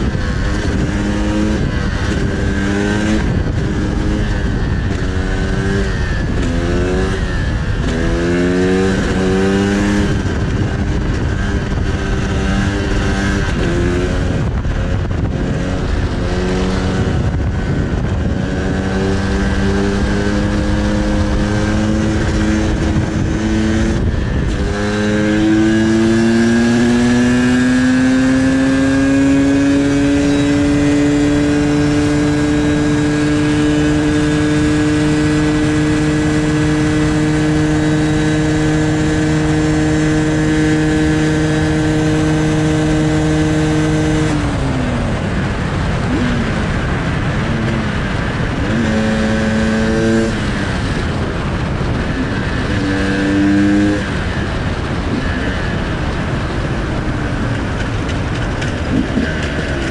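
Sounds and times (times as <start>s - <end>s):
motorcycle engine running hard: 0.0s - 59.9s
wind rushing over microphone: 0.0s - 59.9s.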